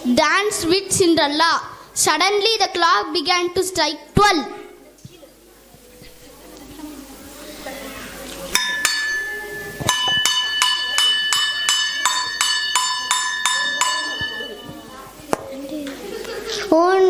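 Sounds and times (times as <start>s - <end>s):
bell-like metal chime strikes: 8.6s - 15.0s.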